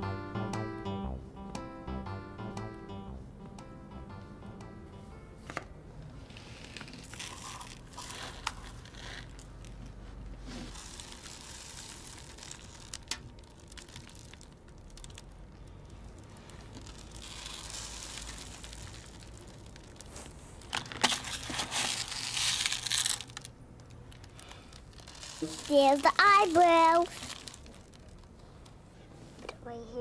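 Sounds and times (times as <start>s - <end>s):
aluminium foil crinkling: 6.3s - 28.5s.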